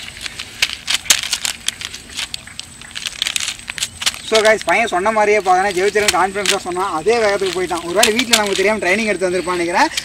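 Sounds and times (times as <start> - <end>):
bare feet slapping on paper: 0.0 - 10.0.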